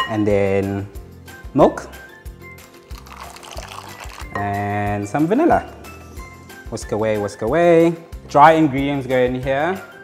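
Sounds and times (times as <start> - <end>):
background music with beat: 0.0 - 10.0
milk pouring into a bowl: 2.9 - 4.4.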